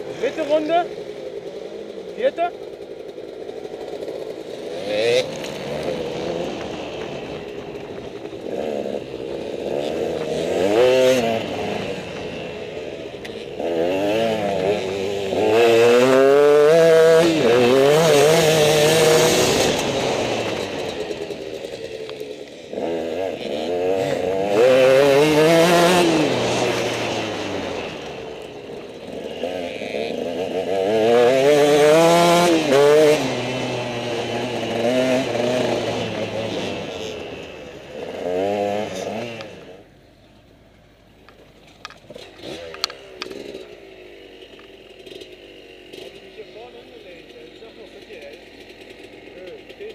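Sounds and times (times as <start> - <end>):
motorcycle engines revving: 0.0 - 49.9.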